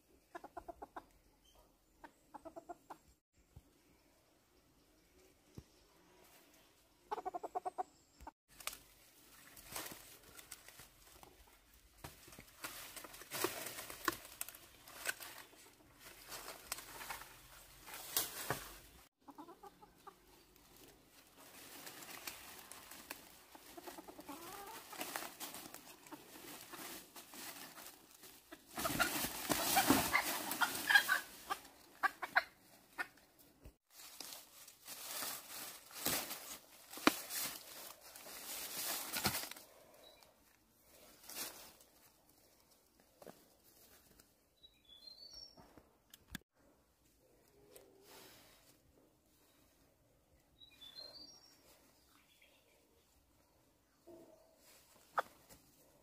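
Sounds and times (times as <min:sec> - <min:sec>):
rooster clucking: 0:00.2 - 0:01.2, 0:02.0 - 0:03.1, 0:07.0 - 0:08.3, 0:19.2 - 0:20.3, 0:28.4 - 0:33.2, 0:55.1 - 0:55.4
rustling of dry leaves underfoot: 0:08.5 - 0:33.1, 0:33.8 - 0:44.4.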